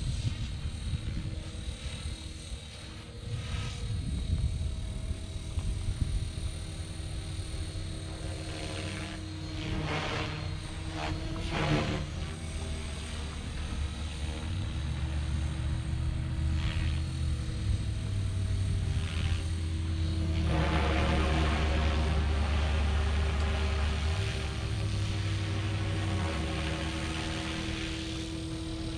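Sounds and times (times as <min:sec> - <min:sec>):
rc helicopter rotor and motor drone: 0:00.0 - 0:28.9.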